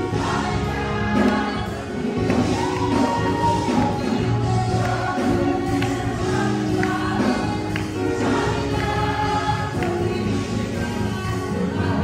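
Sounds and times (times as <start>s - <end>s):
voices singing worship song: 0.0s - 12.0s.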